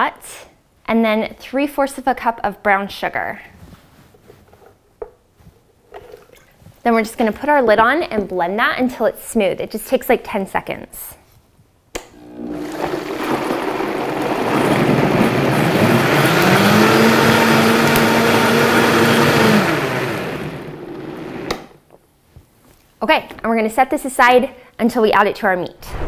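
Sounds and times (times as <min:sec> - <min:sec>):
blender motor running: 0:12.1 - 0:21.8
blender switch click: 0:21.4 - 0:21.7.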